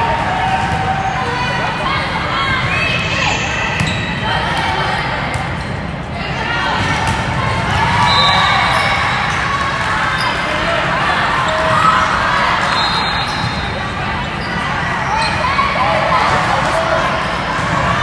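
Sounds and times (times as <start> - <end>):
voices calling and chattering: 0.0 - 18.0.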